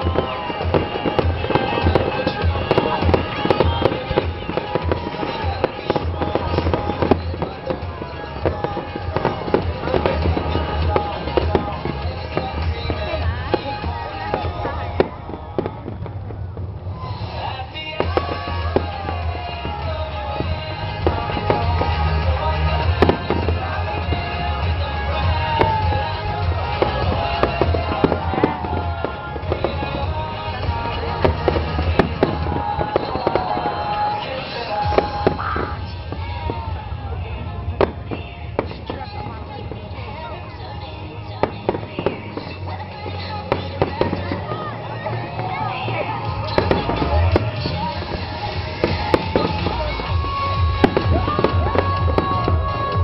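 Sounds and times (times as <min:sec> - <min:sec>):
fireworks bangs: 0:00.0 - 0:53.0
music: 0:00.0 - 0:53.0.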